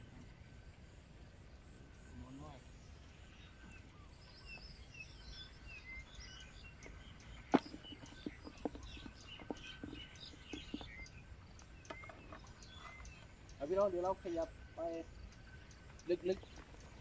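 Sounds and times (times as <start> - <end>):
faint high whine: 0.0 - 8.4, 9.1 - 17.0
small birds chirping: 0.0 - 17.0.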